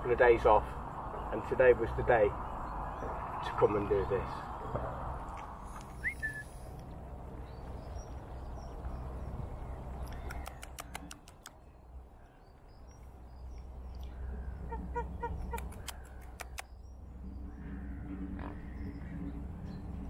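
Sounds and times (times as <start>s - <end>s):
faint birds calling: 5.5s - 20.0s
rapidly repeated bird call: 7.6s - 20.0s.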